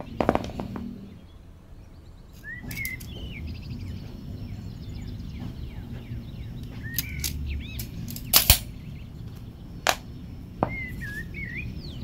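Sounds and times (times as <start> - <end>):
birds chirping: 0.0 - 12.0
low steady background noise: 0.0 - 12.0
metal tools clicking: 2.4 - 3.2, 6.6 - 8.7.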